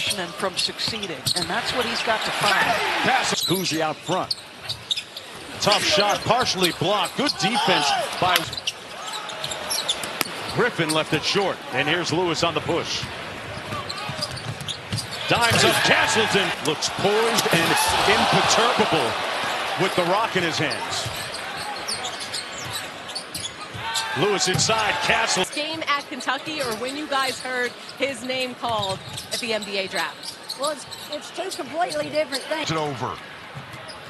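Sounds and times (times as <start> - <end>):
crowd noise: 0.0 - 34.0
sneakers squeaking on court: 0.1 - 11.0, 13.0 - 16.3, 17.4 - 32.7.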